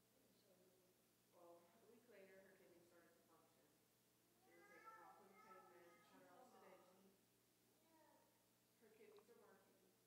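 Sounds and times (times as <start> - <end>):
faint distant voice speaking: 4.4 - 7.2, 7.8 - 10.0.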